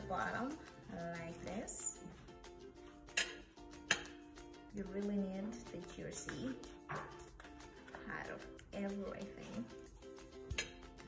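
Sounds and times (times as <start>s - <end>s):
background music: 0.0s - 11.0s
metal spoon clinking on plate: 3.1s - 4.2s.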